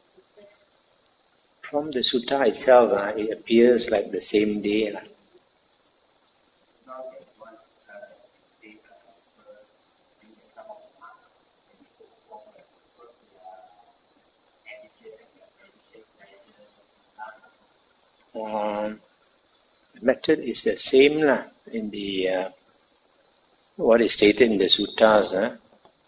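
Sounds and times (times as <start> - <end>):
high-pitched whine: 1.6 - 5.4, 6.8 - 17.6, 18.4 - 19.1, 20.0 - 22.6, 23.8 - 26.0
person humming: 18.4 - 18.9
faint distant speech: 18.4 - 19.0.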